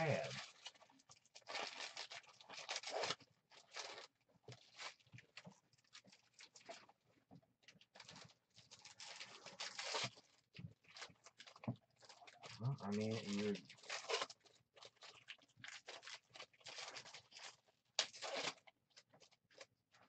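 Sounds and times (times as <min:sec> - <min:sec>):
foil wrappers crinkling and tearing: 0:00.0 - 0:07.0, 0:07.7 - 0:20.0.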